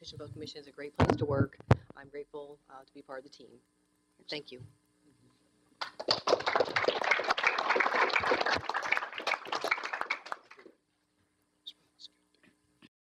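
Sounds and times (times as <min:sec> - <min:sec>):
audience applauding: 0:05.8 - 0:10.7.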